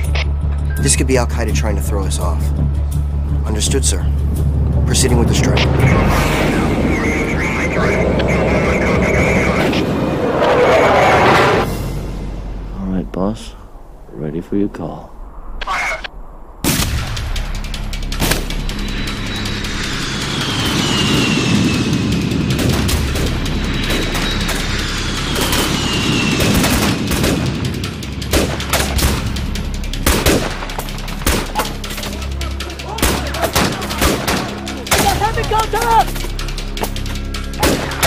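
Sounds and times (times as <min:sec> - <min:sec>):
film music score: 0:00.0 - 0:38.0
long falling whistles: 0:18.8 - 0:22.6, 0:23.7 - 0:26.8.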